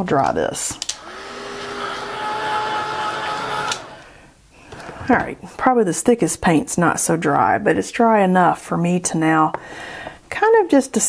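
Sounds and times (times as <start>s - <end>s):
heat tool whining: 0.8s - 4.2s.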